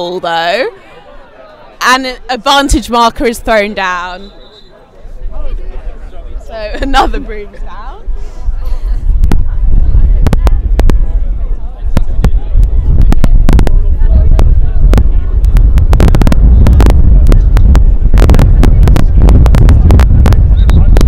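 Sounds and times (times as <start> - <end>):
wind buffeting microphone: 5.4 - 21.0.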